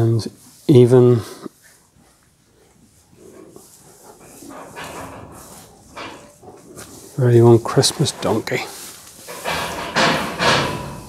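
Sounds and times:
farm animal sounds: 0.0 - 11.0.

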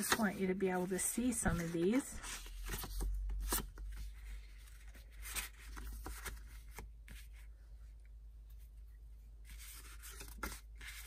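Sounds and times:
paper cards shuffling: 1.4 - 7.4.

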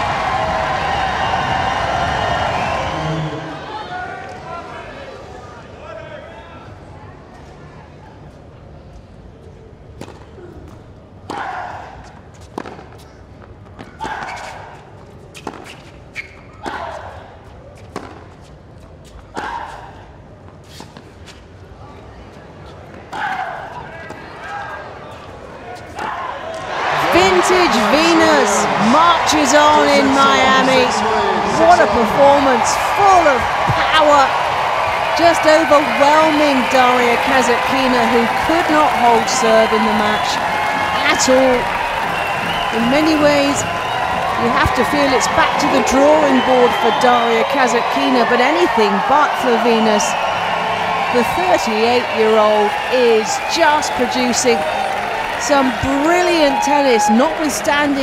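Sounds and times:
crowd cheering and whooping: 0.0 - 4.1, 26.4 - 58.0.

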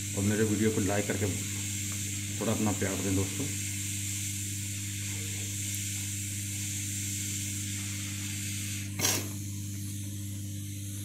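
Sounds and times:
hot air blowing hiss: 0.0 - 11.0
low motor hum: 0.0 - 11.0.

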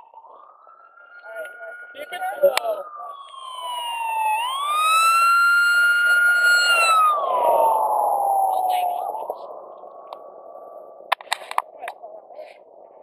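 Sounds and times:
siren-like wailing tone: 0.0 - 11.1
road and wind noise: 0.0 - 13.0.

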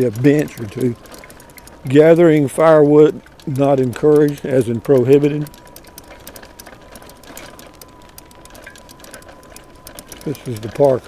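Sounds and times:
fast uneven ticking: 0.0 - 11.0
low rolling noise: 0.0 - 11.0.

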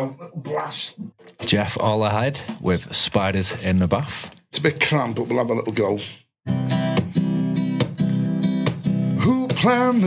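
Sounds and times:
acoustic guitar strumming chords: 6.5 - 10.0.

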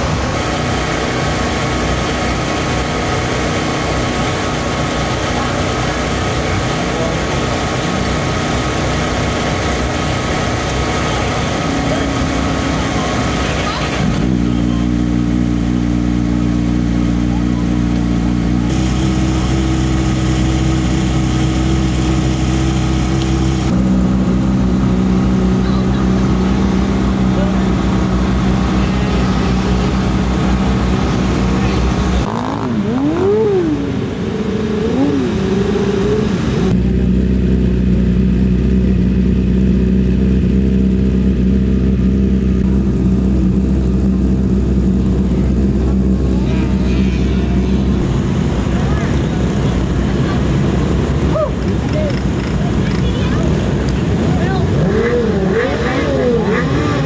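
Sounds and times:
engine revving: 0.0 - 57.0
race car engines running: 0.0 - 57.0.

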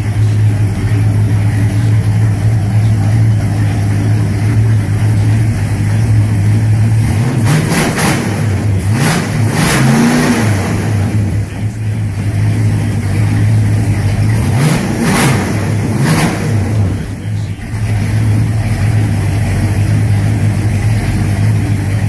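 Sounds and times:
engine idling and revving: 0.0 - 22.0.

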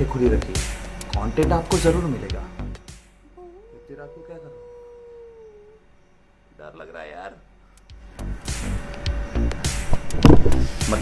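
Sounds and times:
dog howling: 3.3 - 6.0.

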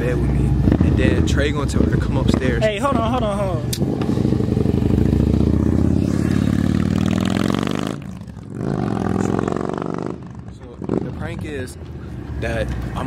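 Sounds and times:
quieter engine: 0.0 - 13.0
vehicle engine driving past: 3.8 - 10.2.

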